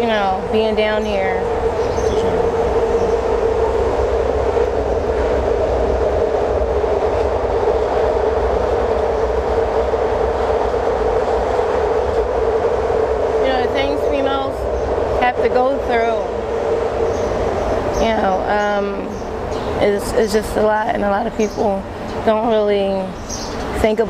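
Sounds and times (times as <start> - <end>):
train passing rumble: 0.0 - 24.0.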